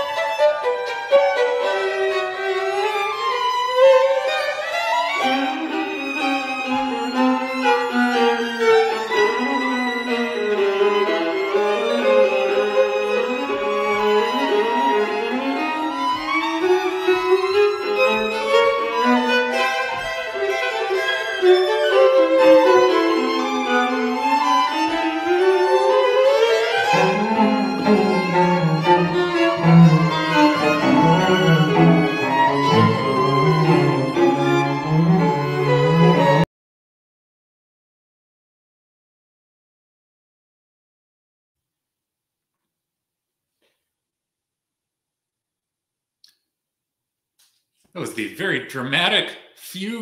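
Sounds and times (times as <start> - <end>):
string quartet playing: 0.0 - 36.5.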